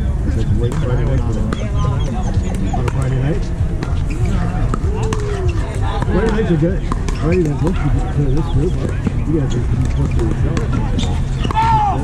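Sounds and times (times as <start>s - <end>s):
players calling out: 0.3s - 12.0s.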